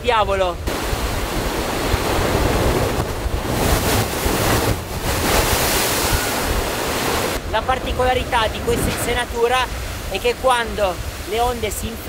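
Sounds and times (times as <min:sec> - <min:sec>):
wind buffeting microphone: 0:00.0 - 0:11.3
sea waves crashing on rocks: 0:00.6 - 0:12.0.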